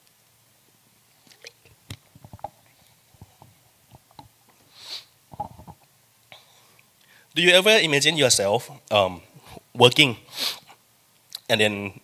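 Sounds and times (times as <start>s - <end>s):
short hiss: 4.6s - 5.3s, 10.3s - 10.8s.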